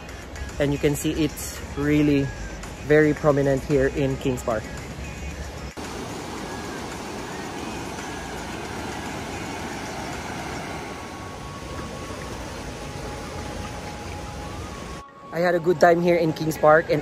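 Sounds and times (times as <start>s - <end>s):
river water rushing over rocks: 4.3s - 15.0s.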